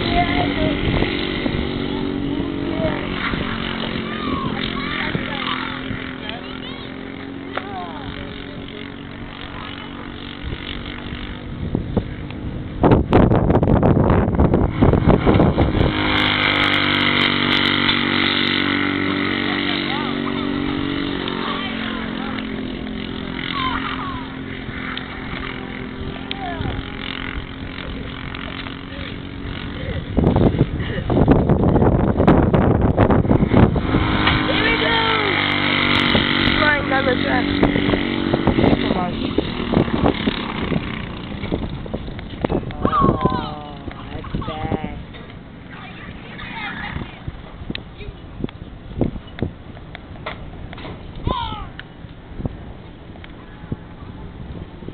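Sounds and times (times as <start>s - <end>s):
go-kart engine running: 0.0s - 54.9s.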